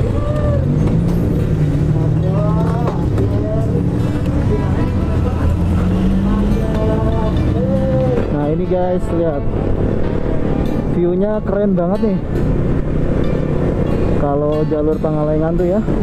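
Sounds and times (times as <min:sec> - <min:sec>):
voices: 0:00.0 - 0:09.8.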